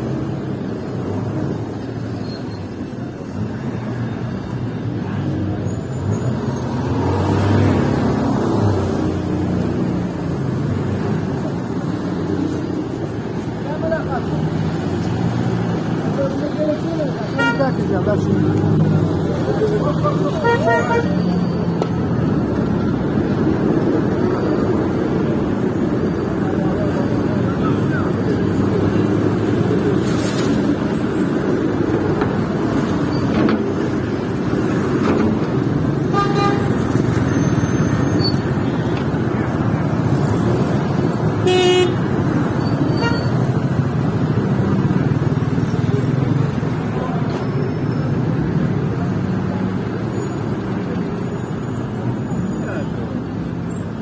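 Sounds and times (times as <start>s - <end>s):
cars idling and moving: 0.0s - 54.0s
people talking nearby: 11.3s - 21.5s, 26.1s - 29.2s, 45.5s - 53.5s
car horn toots: 41.4s - 42.0s, 43.0s - 43.4s.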